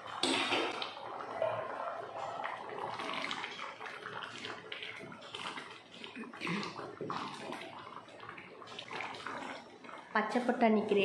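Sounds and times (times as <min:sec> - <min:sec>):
spoon stirring simmering pot: 0:00.1 - 0:11.0.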